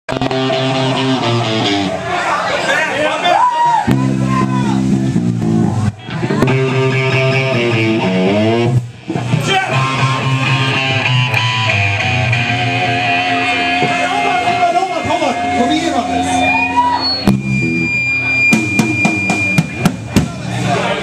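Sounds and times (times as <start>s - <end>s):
electric guitars playing loud chords: 0.1s - 2.1s, 3.9s - 21.0s.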